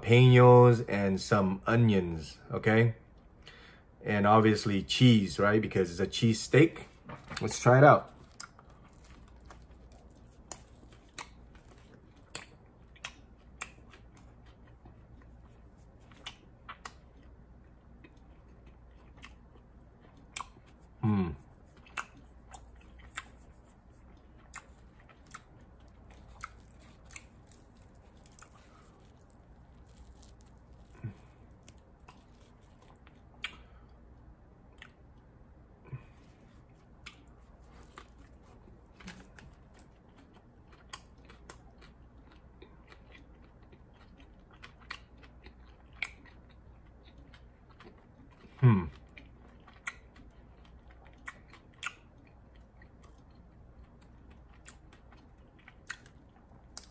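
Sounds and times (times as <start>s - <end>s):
person chewing bread: 6.8s - 56.9s.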